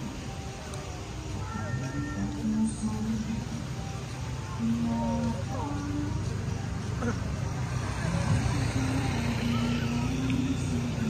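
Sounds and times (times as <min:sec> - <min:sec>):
music with held notes: 0:00.0 - 0:11.0
road traffic: 0:00.0 - 0:11.0.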